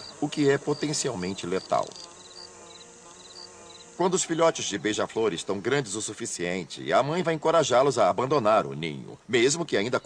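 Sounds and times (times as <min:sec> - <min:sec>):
insect-like buzzing hum: 0:00.0 - 0:07.2.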